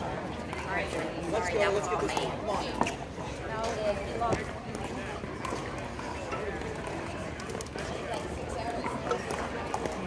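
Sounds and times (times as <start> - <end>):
outdoor noise: 0.0 - 10.0.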